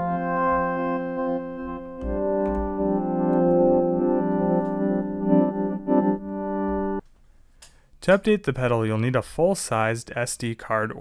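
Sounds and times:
synthesizer pad chords with delay: 0:00.0 - 0:07.0.

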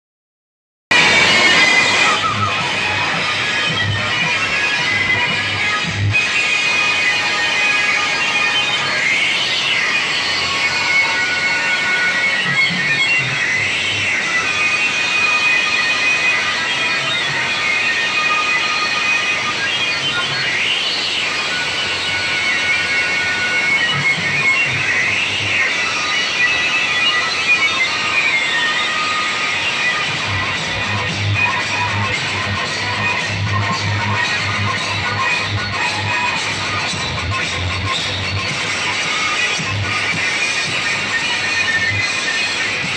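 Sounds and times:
loud music from loudspeakers: 0:00.9 - 0:42.9.

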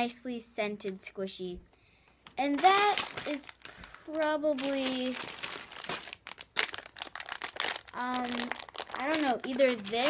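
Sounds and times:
plastic packaging crinkling: 0:02.2 - 0:10.0.

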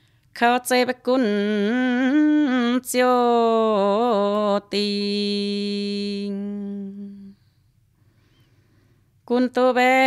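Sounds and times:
woman singing a long note: 0:00.4 - 0:07.3.

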